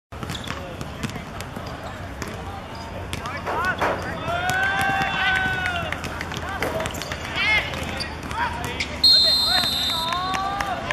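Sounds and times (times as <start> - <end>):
people shouting: 4.1 - 5.9.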